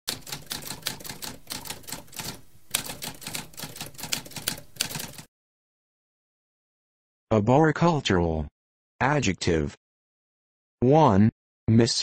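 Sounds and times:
typewriter keys clacking: 0.1 - 5.3.

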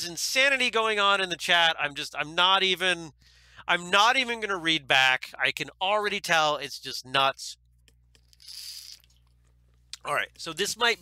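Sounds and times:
breath into microphone: 3.2 - 3.6.

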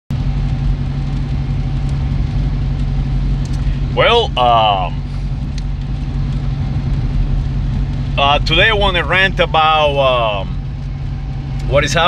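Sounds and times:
car engine and road noise: 0.1 - 12.0.

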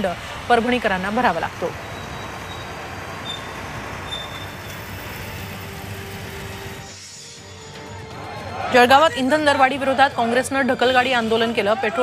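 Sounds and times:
traffic: 0.0 - 12.0.

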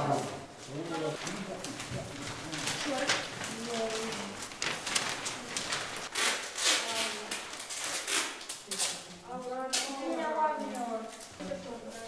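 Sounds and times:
people talking: 0.0 - 4.4, 8.7 - 12.0
paper rustling and slapping on table: 0.0 - 12.0.

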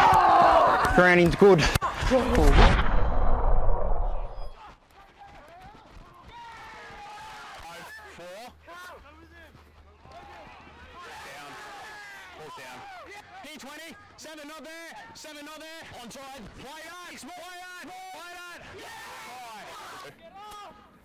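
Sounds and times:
microphone rumble: 2.0 - 4.6.

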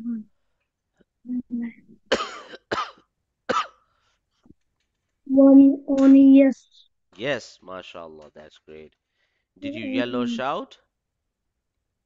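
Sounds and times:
person coughing: 2.1 - 3.8.

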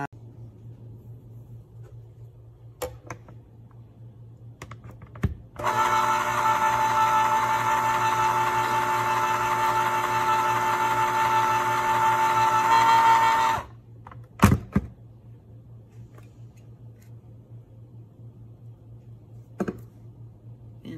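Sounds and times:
electric can opener motor running: 5.6 - 13.8.

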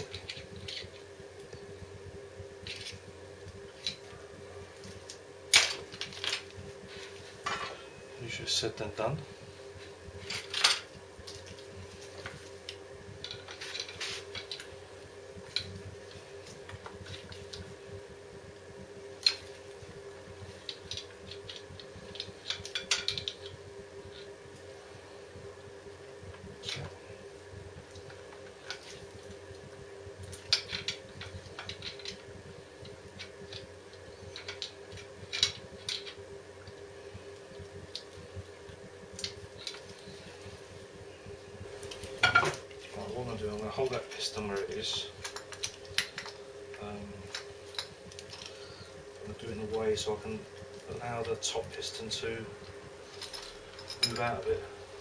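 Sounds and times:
steady hum: 0.0 - 55.0
metal tools clinking and scraping: 53.1 - 54.4.

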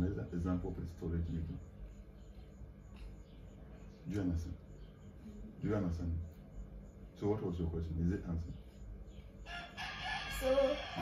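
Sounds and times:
rooster crowing: 9.4 - 11.0.

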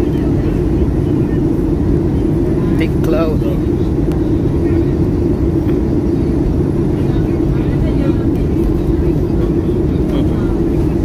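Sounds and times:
airliner cabin engine noise: 0.0 - 11.0
faint voices: 0.0 - 11.0.

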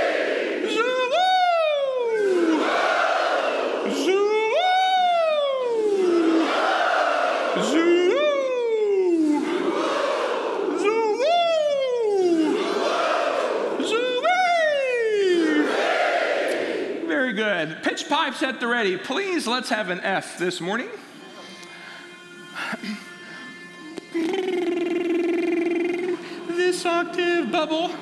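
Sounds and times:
group of singers in unison: 0.0 - 0.8, 9.0 - 11.2
man singing gliding calls: 0.6 - 2.6, 3.8 - 6.6, 7.6 - 9.6, 10.7 - 12.7, 13.8 - 15.7, 23.4 - 28.0
person speaking: 0.6 - 2.7, 3.8 - 6.6, 7.6 - 9.6, 10.7 - 12.8, 13.8 - 15.8, 24.0 - 28.0.

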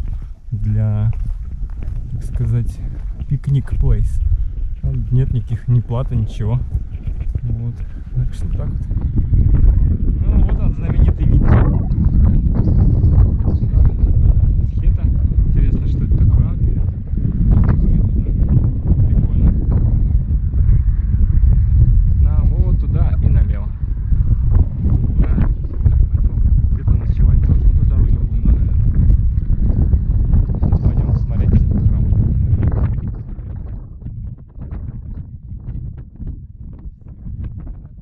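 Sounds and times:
footsteps on stony path: 0.0 - 10.0
wind buffeting microphone: 0.0 - 38.0.

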